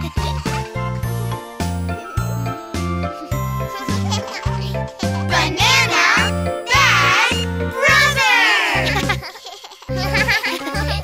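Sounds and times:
bouncy children's song music: 0:00.0 - 0:11.0.

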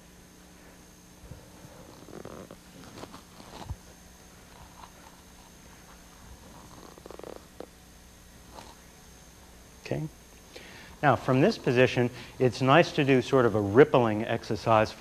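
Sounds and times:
faint high whine: 0:00.0 - 0:15.0
steady low hum: 0:00.0 - 0:15.0.

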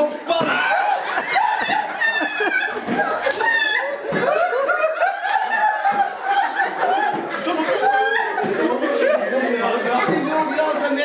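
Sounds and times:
crowd laughing: 0:00.0 - 0:11.0.

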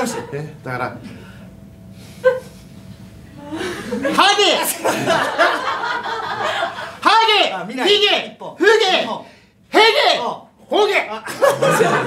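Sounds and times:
audience laughter: 0:03.5 - 0:07.0, 0:11.3 - 0:12.0
man laughing loudly: 0:03.6 - 0:07.0, 0:11.3 - 0:12.0.

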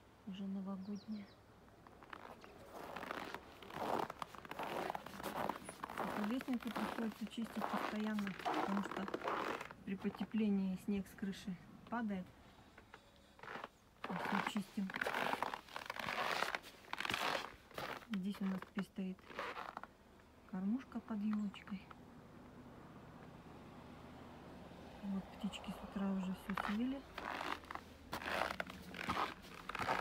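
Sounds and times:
footsteps crunching frozen snow: 0:01.9 - 0:10.2, 0:13.4 - 0:19.8, 0:26.4 - 0:30.0.

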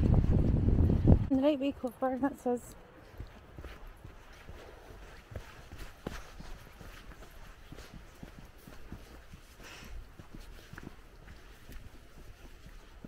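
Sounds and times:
footsteps on muddy dirt path: 0:02.4 - 0:13.0.

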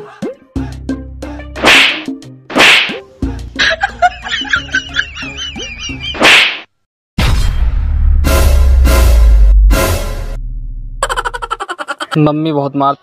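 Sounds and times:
slap sound effects: 0:01.6 - 0:03.0, 0:06.1 - 0:06.7
comic background music: 0:07.2 - 0:10.4.

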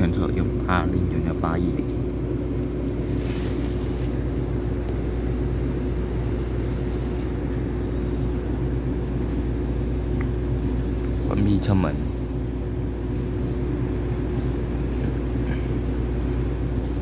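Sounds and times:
train equipment humming: 0:00.0 - 0:17.0.

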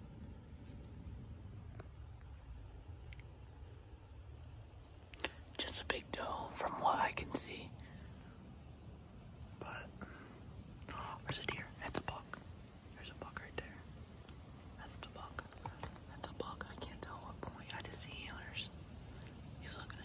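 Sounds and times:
man whispering: 0:05.2 - 0:07.8, 0:09.5 - 0:10.0, 0:10.8 - 0:13.9, 0:19.6 - 0:20.0
light clicks and rustles: 0:14.2 - 0:18.2.

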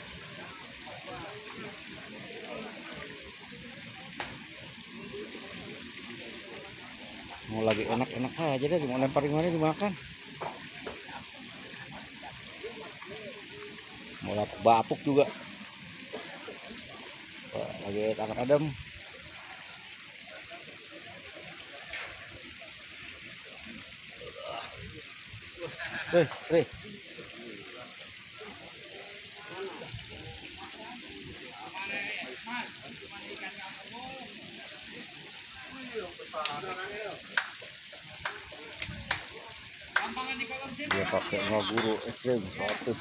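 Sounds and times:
faint voices: 0:00.0 - 0:43.0
water trickling: 0:00.0 - 0:43.0.

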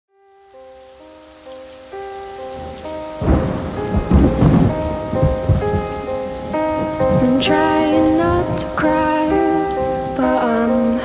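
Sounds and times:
rain: 0:00.1 - 0:11.0
slow held melodic notes: 0:00.1 - 0:11.0
rolling thunder: 0:02.1 - 0:11.0.

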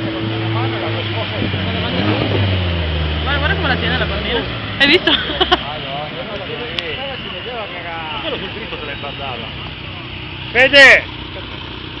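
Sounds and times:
bystanders talking: 0:00.0 - 0:12.0
car engine hum: 0:00.0 - 0:12.0.

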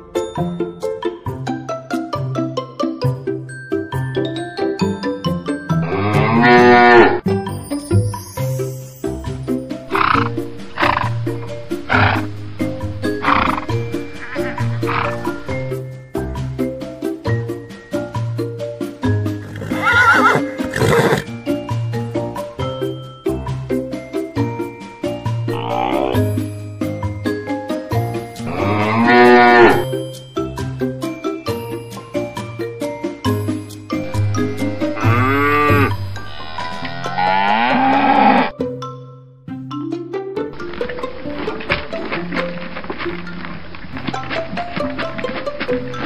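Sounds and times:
light background music: 0:00.0 - 0:46.0
cow mooing: 0:05.8 - 0:07.2, 0:25.5 - 0:26.3, 0:28.5 - 0:29.8, 0:34.1 - 0:38.5.

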